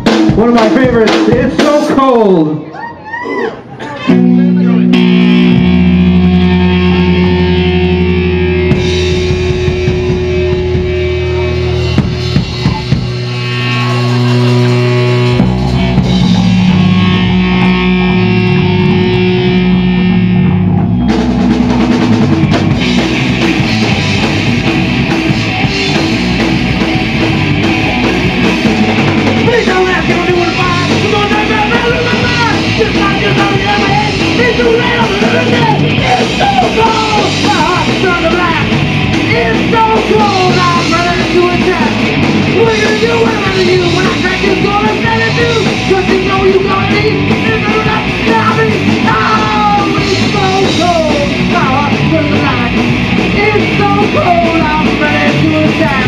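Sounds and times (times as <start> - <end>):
drum kit: 0.0 - 2.4, 4.1 - 56.0
punk rock band playing: 0.0 - 2.7, 3.6 - 56.0.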